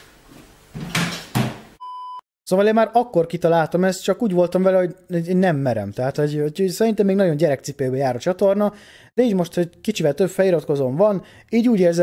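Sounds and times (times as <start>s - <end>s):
electronic test-tone beep: 1.8s - 2.2s.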